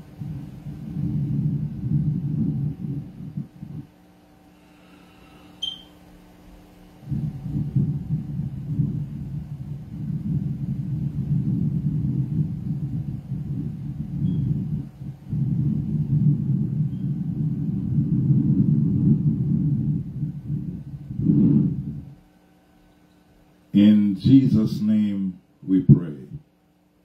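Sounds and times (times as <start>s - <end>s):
low muffled rumble: 0.0s - 27.0s.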